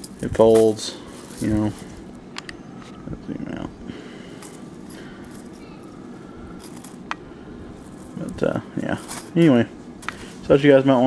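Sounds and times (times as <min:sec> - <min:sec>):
chainmail rings clinking: 0:00.0 - 0:02.0, 0:04.4 - 0:07.0, 0:07.8 - 0:09.5.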